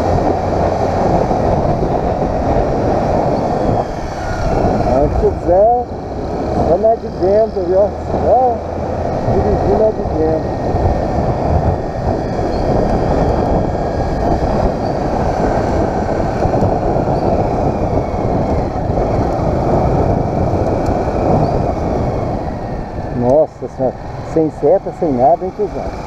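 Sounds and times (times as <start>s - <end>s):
small motorcycle engine running: 0.0s - 26.0s
wind rumble on microphone: 0.0s - 26.0s.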